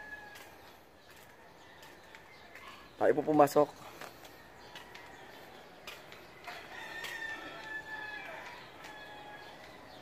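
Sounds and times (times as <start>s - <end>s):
rooster crowing: 0.0s - 0.5s, 6.4s - 10.0s.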